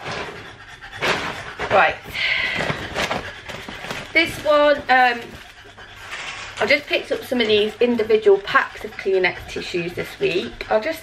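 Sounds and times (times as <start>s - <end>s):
panting: 0.0s - 11.0s
shopping bag rustling: 1.7s - 5.4s
packets being handled: 2.2s - 5.5s.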